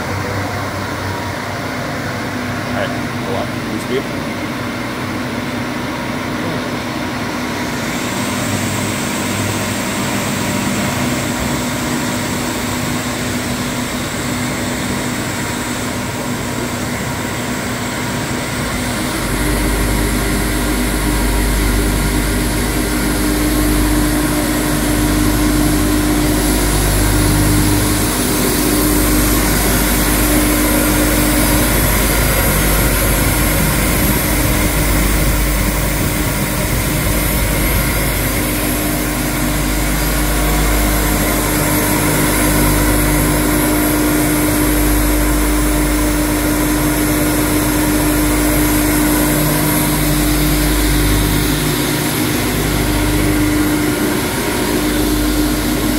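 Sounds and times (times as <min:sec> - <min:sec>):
higher whine: 0:00.0 - 0:55.9
machine motor hum and whine: 0:00.0 - 0:55.9.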